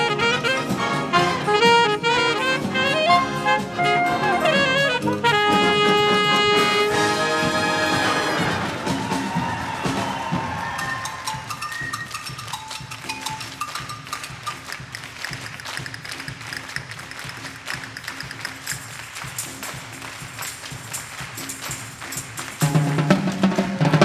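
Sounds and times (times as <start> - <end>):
soft wind instrument run: 0.0 - 8.7
hands clapping in rhythm: 9.3 - 24.0
tambourine: 17.8 - 23.8.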